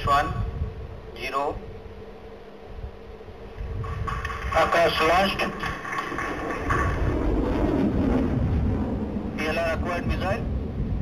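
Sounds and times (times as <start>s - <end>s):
rocket motor rumble: 1.7s - 11.0s.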